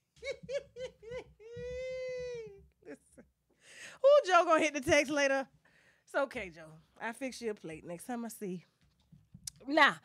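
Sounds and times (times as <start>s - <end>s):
woman laughing: 0.0s - 3.4s.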